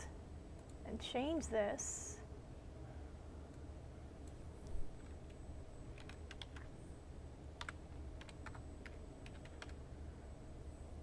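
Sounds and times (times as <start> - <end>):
computer keyboard keys clicking: 6.0 - 6.7, 7.6 - 9.8.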